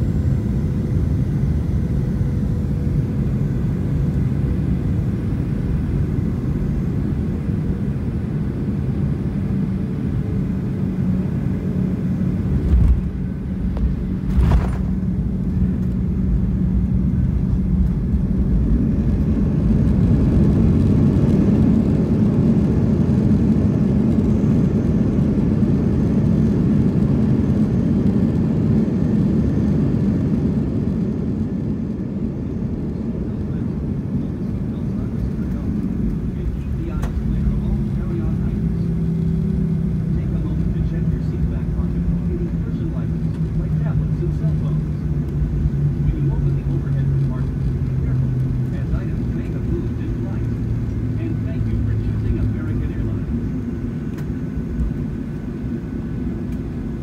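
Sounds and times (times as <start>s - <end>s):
jet cabin rumble: 0.0s - 57.0s.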